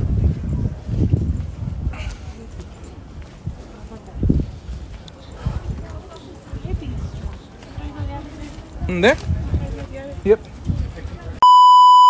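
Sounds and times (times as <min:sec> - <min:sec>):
footsteps thumping on microphone: 0:00.0 - 0:11.0
voices of people nearby: 0:00.0 - 0:11.4.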